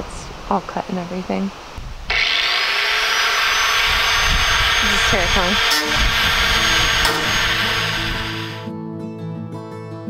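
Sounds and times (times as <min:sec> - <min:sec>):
angle grinder cutting metal: 0:02.1 - 0:08.7.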